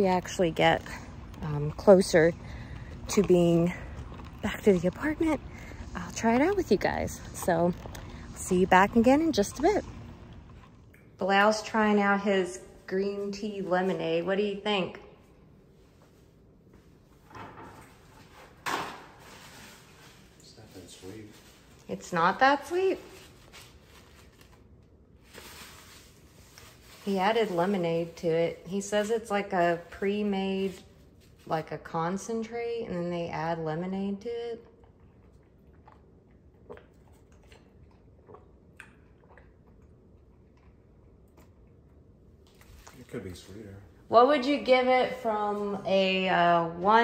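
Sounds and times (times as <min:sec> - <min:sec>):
soft rustle: 0:25.2 - 0:31.6.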